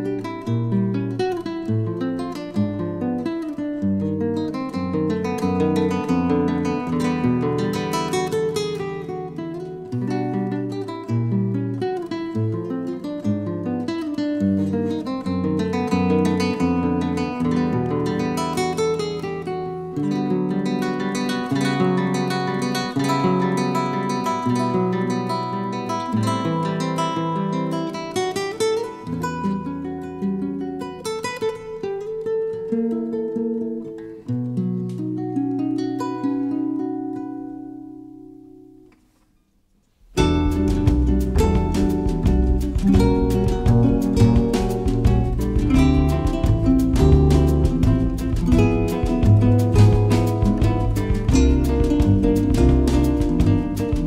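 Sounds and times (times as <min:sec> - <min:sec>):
acoustic guitar music: 0:00.0 - 0:54.0.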